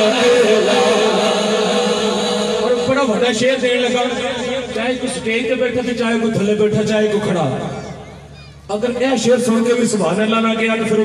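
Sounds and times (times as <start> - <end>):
man chanting into microphone: 0.0 - 7.4.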